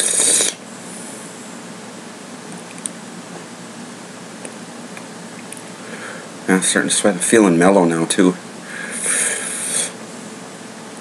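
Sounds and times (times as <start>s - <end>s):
steady low hiss: 0.0s - 11.0s
person breathing loudly: 5.8s - 6.3s, 8.6s - 10.0s.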